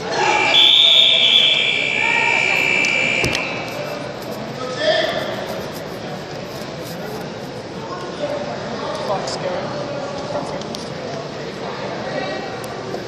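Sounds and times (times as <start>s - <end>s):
voices in echoing hall: 0.0s - 13.0s
electronic buzzer tone: 0.2s - 3.7s
buzzer click: 2.5s - 3.6s.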